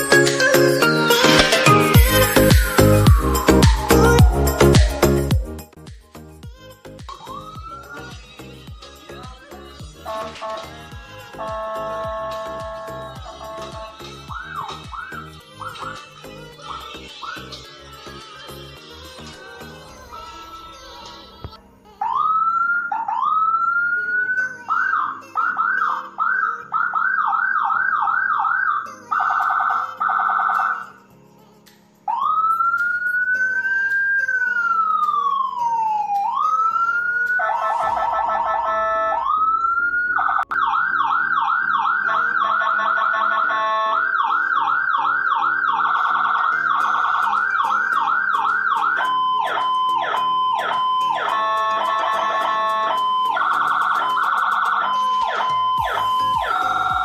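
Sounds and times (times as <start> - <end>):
quiet music: 0.0 - 57.0
blaring horn-like tone: 10.0 - 14.2, 37.4 - 44.6, 49.0 - 53.5
electronic ambulance siren: 10.0 - 15.9, 22.0 - 31.0, 32.1 - 57.0.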